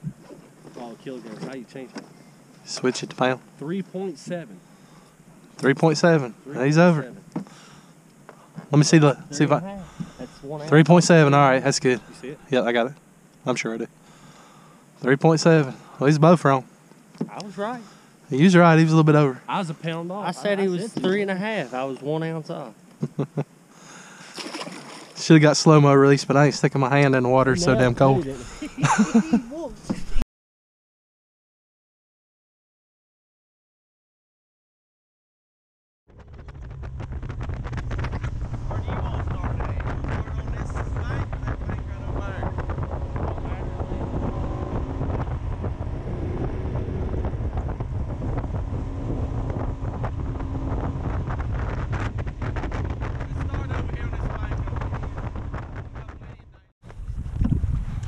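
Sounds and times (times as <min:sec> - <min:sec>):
boat motor running: 0:00.0 - 0:14.8, 0:36.1 - 0:58.0
fish splashing in water: 0:24.3 - 0:25.2
wind buffeting microphone: 0:36.1 - 0:58.0.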